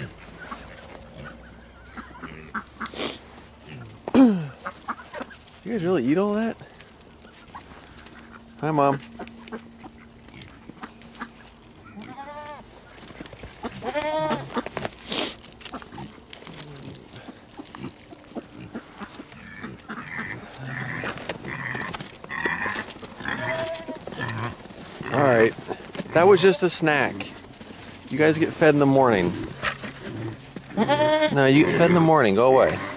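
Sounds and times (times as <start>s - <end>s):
goats bleating: 11.8s - 12.7s, 13.6s - 14.7s, 18.8s - 26.8s, 30.6s - 32.9s.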